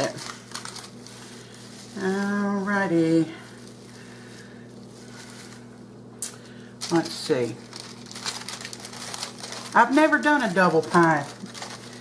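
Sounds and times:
person speaking: 0:00.0 - 0:00.4, 0:01.8 - 0:03.7, 0:06.8 - 0:07.7, 0:09.6 - 0:11.5
faint steady hum: 0:00.0 - 0:12.0
wax paper crinkling: 0:00.0 - 0:12.0.

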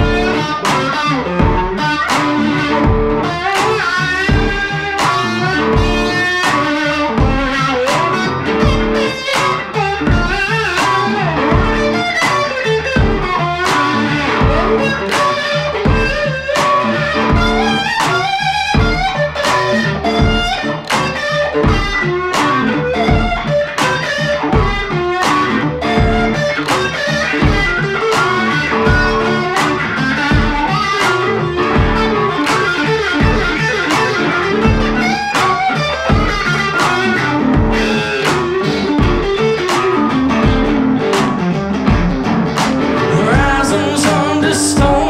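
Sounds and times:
electric guitars playing blues riff: 0:00.0 - 0:45.0
low steady beat: 0:00.0 - 0:45.0.

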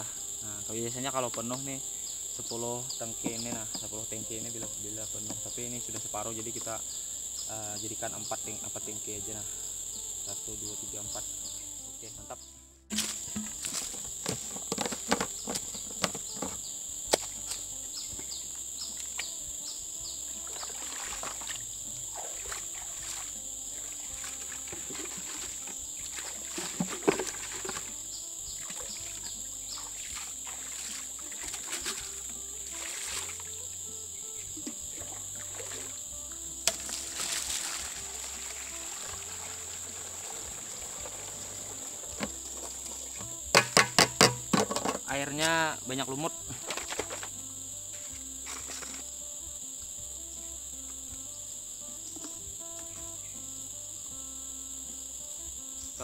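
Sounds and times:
high insect drone: 0:00.0 - 0:56.0
water splashing and pouring: 0:20.4 - 0:28.0, 0:28.6 - 0:33.5, 0:35.0 - 0:36.0, 0:36.7 - 0:43.2
sharp knocks: 0:43.5 - 0:45.0.

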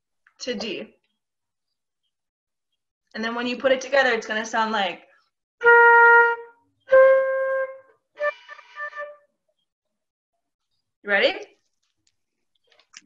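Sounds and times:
flute playing single notes: 0:05.6 - 0:09.3.

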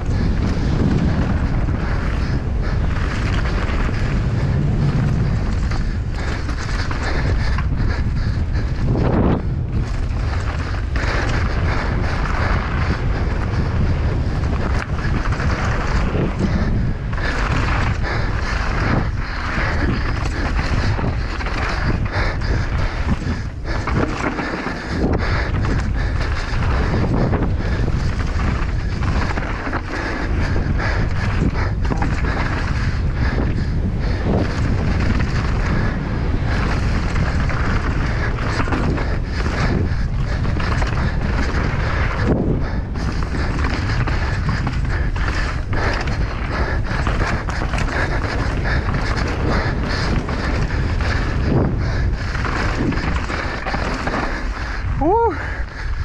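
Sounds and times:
bike rattling over bumps: 0:00.0 - 0:56.0
tyres rolling over gravel: 0:00.0 - 0:56.0
wind rushing over microphone: 0:00.0 - 0:56.0.

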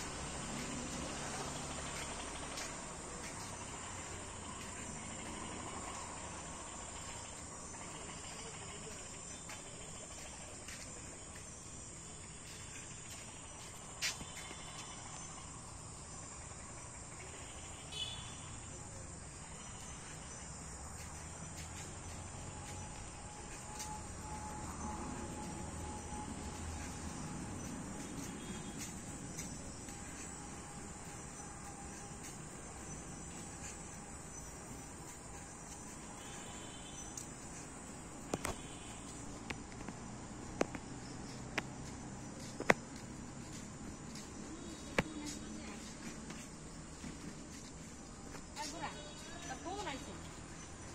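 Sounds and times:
crickets trilling: 0:00.0 - 0:50.9.

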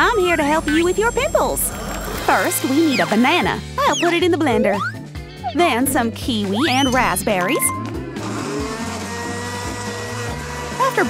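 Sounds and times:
blender running: 0:01.4 - 0:03.7, 0:07.9 - 0:11.0.

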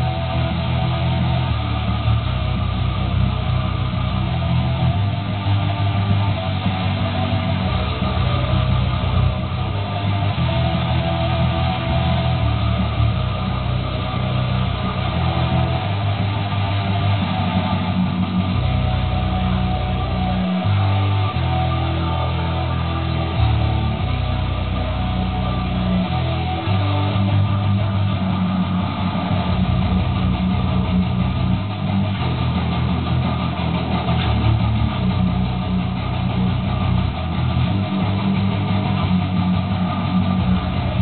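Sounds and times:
electric bass guitar low notes: 0:00.0 - 0:41.0
heavy metal music: 0:00.0 - 0:41.0.

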